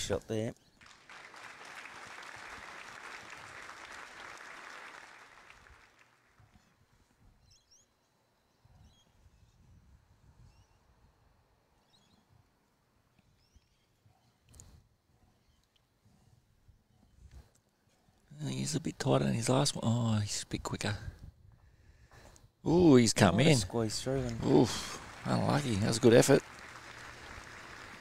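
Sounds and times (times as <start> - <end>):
spectators clapping: 0.8 - 6.4, 23.7 - 28.0.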